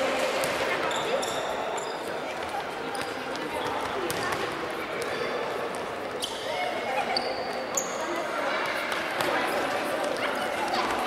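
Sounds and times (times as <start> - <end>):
shoe squeaks: 0.8 - 2.2, 5.0 - 5.6, 6.2 - 8.2.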